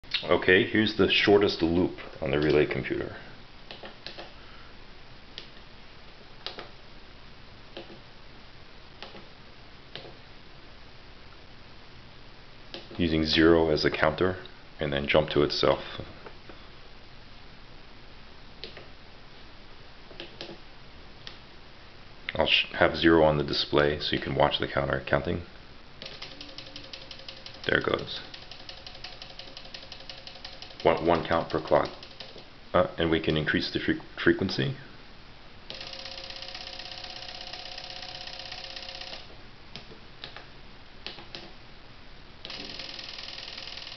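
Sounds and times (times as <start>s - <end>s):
faint steady hum: 0.0s - 43.9s
relays clicking rapidly: 26.0s - 32.4s, 35.7s - 39.3s, 42.5s - 43.9s.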